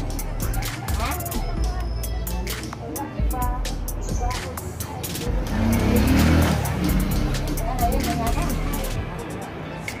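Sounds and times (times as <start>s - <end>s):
vehicle engine passing by: 5.3s - 9.0s.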